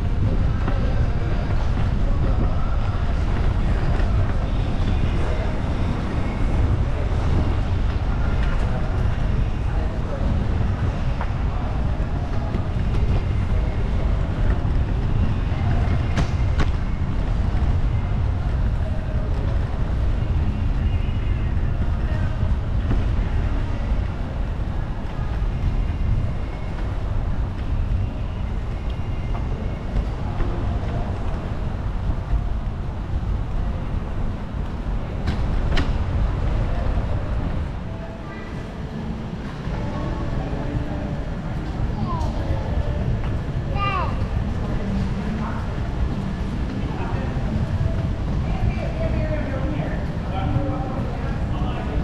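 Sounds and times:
faint distant voices: 0.0s - 52.0s
wind buffeting microphone: 0.0s - 52.0s.

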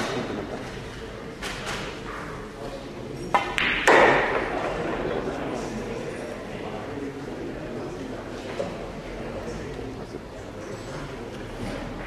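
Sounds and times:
cue striking ball: 3.4s - 4.8s
pool balls colliding: 3.4s - 5.0s.

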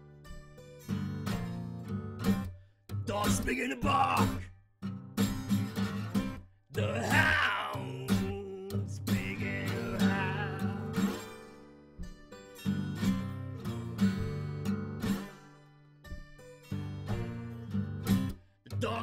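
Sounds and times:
acoustic guitar blues riff: 0.0s - 19.0s.

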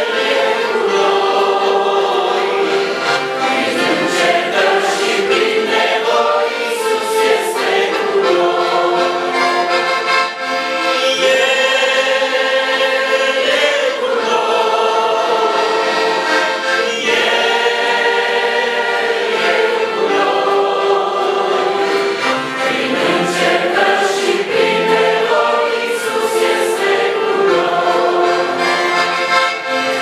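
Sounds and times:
piano accordion: 0.0s - 30.0s
man singing a hymn: 11.0s - 15.6s.

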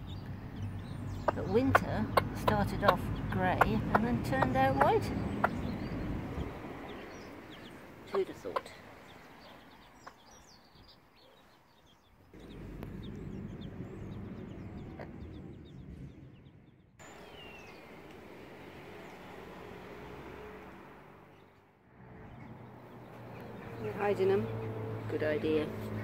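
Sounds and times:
low outdoor rumble: 0.0s - 9.2s, 12.2s - 19.8s
chicks peeping: 0.0s - 18.2s.

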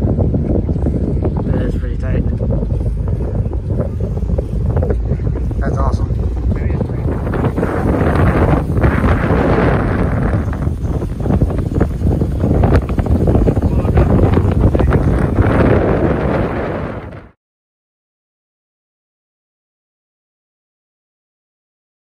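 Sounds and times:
boat engine running: 0.0s - 17.4s
wind buffeting microphone: 0.0s - 17.4s.

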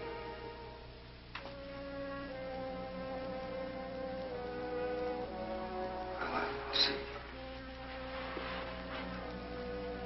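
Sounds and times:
orchestral music sustained notes: 0.0s - 10.0s.

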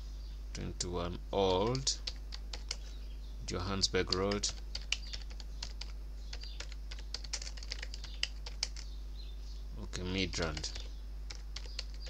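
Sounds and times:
steady low hum: 0.0s - 12.0s
computer keyboard typing: 1.6s - 2.8s, 4.1s - 8.9s, 10.4s - 12.0s.

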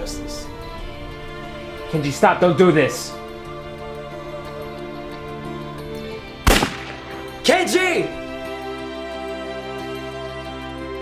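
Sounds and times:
soft background music: 0.0s - 11.0s
loud handgun shot: 6.4s - 7.4s.

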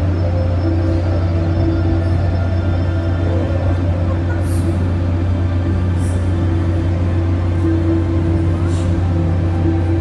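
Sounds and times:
droning ambient music: 0.0s - 10.0s.

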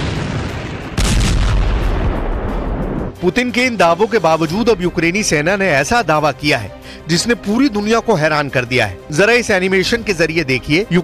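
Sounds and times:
artillery blast: 0.0s - 3.1s.

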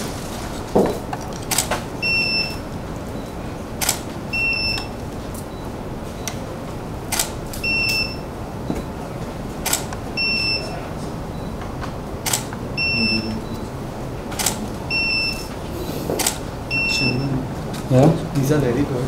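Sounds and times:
camera shutter firing: 1.4s - 1.9s, 3.8s - 4.1s, 7.1s - 7.6s, 9.6s - 10.0s, 12.2s - 12.5s, 14.4s - 14.7s, 16.2s - 16.4s.

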